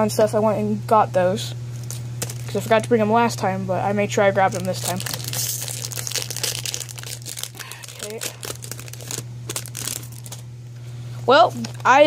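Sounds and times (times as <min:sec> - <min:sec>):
steady low hum: 0:00.0 - 0:12.0
foil wrapper crinkling and tearing: 0:01.8 - 0:02.9, 0:04.4 - 0:10.5.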